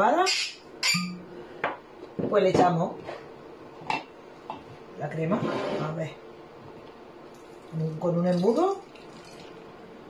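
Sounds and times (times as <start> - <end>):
ringing clink of kitchenware: 0.8 - 1.2.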